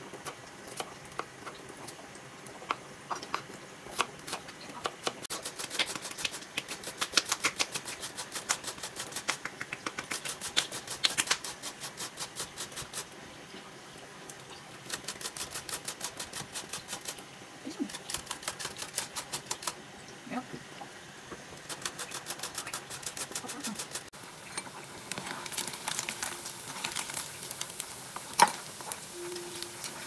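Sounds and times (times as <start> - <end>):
vegetables grated on metal grater: 10.0 - 13.1, 14.9 - 17.2, 17.8 - 19.8, 21.7 - 24.1.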